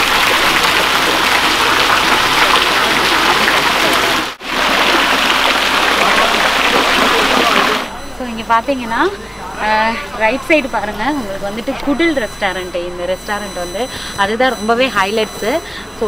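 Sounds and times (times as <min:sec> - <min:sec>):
water pouring and splashing: 0:00.0 - 0:07.9.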